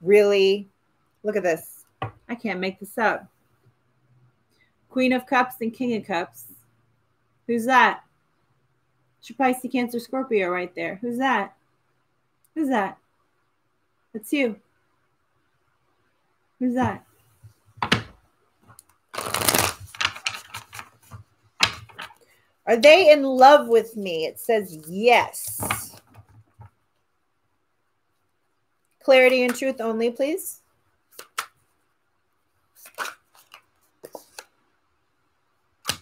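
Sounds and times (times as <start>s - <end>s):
cards being shuffled: 17.8s - 22.2s, 31.1s - 31.6s, 32.7s - 34.6s.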